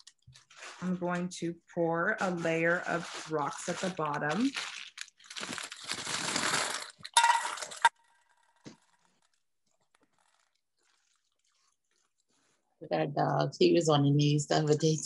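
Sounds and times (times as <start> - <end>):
paper bag crinkling: 0.0 - 1.0, 2.2 - 12.6.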